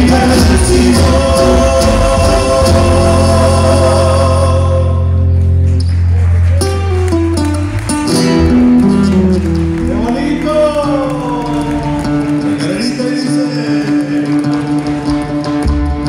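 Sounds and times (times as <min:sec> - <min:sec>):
electric bass: 0:00.0 - 0:16.0
strummed acoustic guitars: 0:00.0 - 0:16.0.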